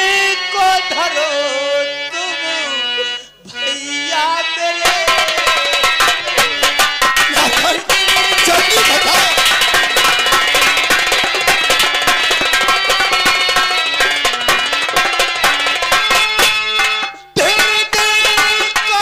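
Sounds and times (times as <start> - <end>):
harmonium playing held notes: 0.0 - 19.0
fast hand-drum strokes: 4.9 - 19.0.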